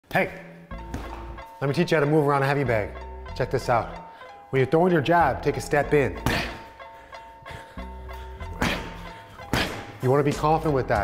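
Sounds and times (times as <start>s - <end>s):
background music: 0.0s - 11.0s
gloves thudding on punching bag: 9.5s - 10.5s.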